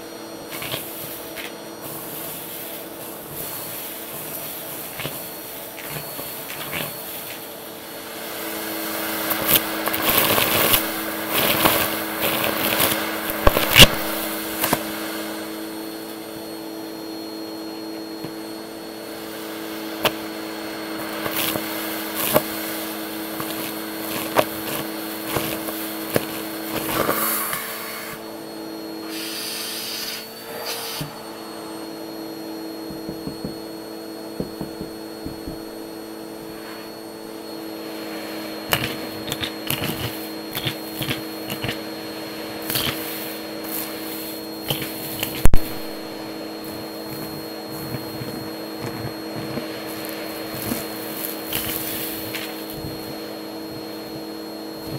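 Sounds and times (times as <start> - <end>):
vacuum cleaner motor hum: 0.0 - 54.9
debris crunching up vacuum hose: 0.2 - 54.9.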